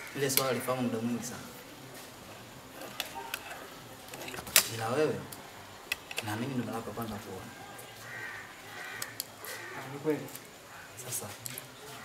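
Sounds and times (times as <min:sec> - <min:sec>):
short raspy bird calls: 0:08.0 - 0:10.0.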